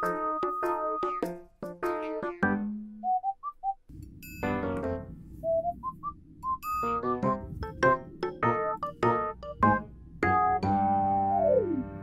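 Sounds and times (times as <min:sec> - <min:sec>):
whistled melody over soft accompaniment: 0:00.0 - 0:03.8, 0:08.0 - 0:12.0.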